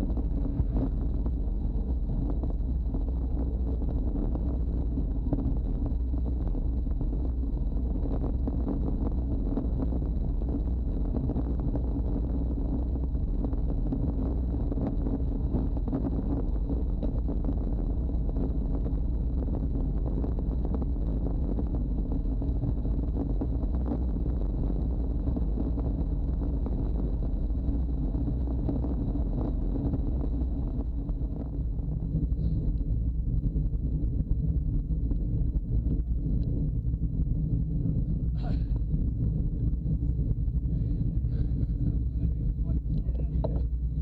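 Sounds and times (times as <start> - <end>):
wind rushing over microphone: 0.0 - 44.0.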